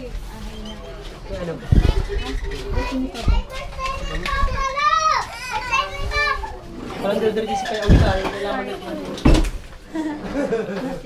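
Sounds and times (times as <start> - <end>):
children chattering and calling out: 0.0 - 11.0
low thump: 7.9 - 8.2.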